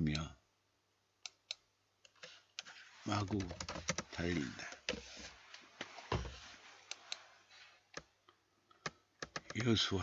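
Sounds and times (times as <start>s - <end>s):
computer keyboard clicks: 8.8s - 9.7s.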